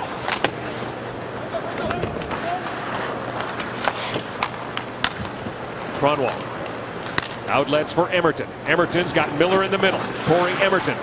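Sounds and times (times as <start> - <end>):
hockey sticks and puck clicking: 0.1 - 1.0, 1.8 - 5.6, 6.2 - 7.5
skates scraping on ice: 0.1 - 4.9, 9.2 - 11.0.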